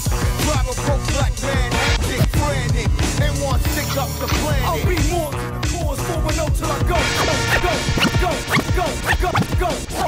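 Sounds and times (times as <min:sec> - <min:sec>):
hip hop beat: 0:00.0 - 0:10.0
turntable scratching: 0:06.9 - 0:10.0.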